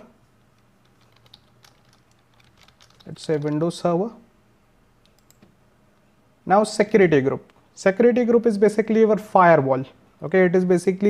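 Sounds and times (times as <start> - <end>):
keyboard keys clicking: 0.8 - 3.8, 5.0 - 5.5.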